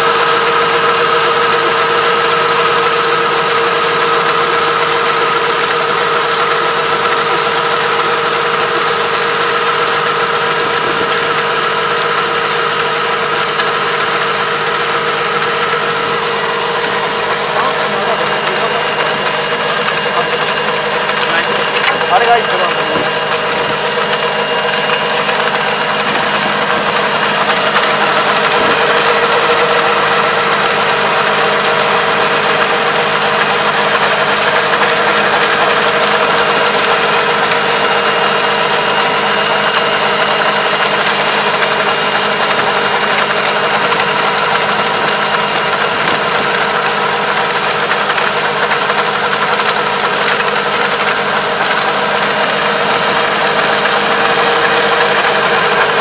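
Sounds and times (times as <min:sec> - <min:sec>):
rotor churning mud: 0:00.0 - 0:56.0
tractor diesel engine running: 0:00.0 - 0:56.0.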